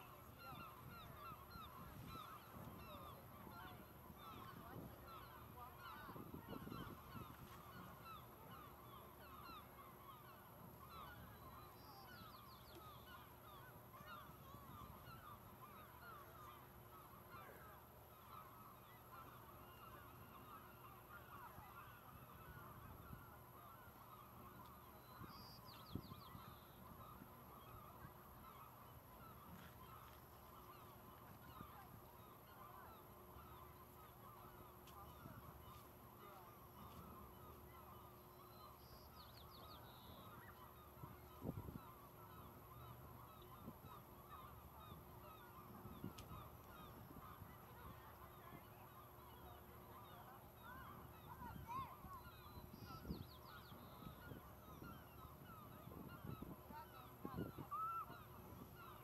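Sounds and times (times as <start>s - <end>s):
distant flock of birds calling: 0.0s - 59.0s.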